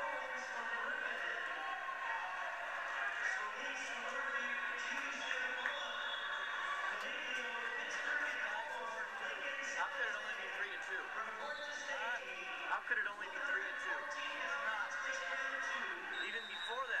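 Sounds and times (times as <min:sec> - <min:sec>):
crowd voices through tv speaker: 0:00.0 - 0:17.0.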